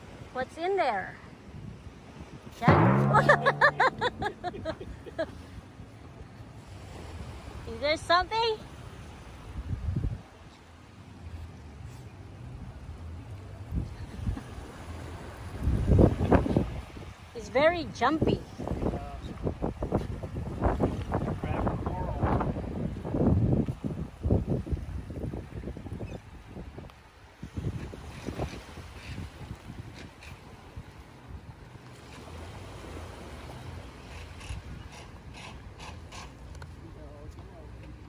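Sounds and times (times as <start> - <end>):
wind buffeting microphone: 15.5 - 30.8
small waves washing: 27.0 - 36.5.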